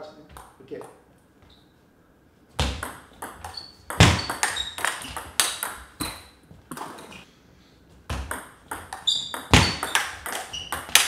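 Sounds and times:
ping pong ball bouncing on table: 2.6 - 6.2, 8.1 - 11.0
ping pong ball hitting paddles: 2.6 - 7.1, 8.1 - 11.0.

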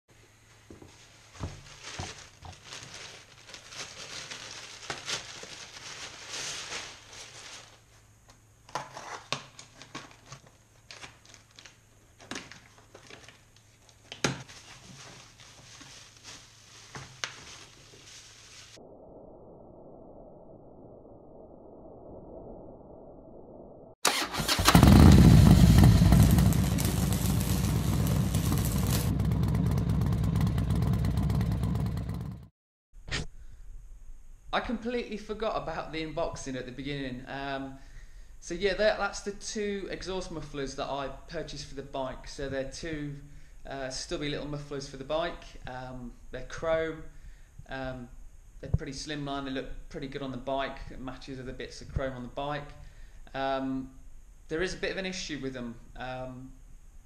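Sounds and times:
plastic bag and bubble wrap rustling: 0.7 - 8.1, 9.7 - 18.8, 25.9 - 29.2
motorcycle engine: 24.1 - 32.5.

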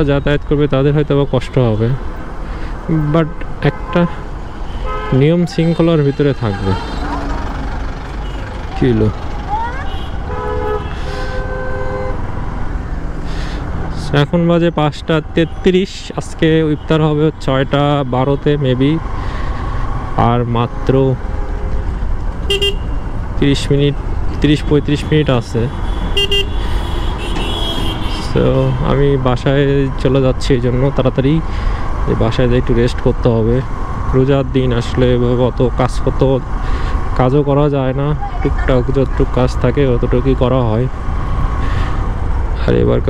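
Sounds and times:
road noise: 0.0 - 43.0
vehicle horns honking: 3.6 - 8.6, 9.8 - 12.3, 22.4 - 23.2, 24.4 - 29.0.

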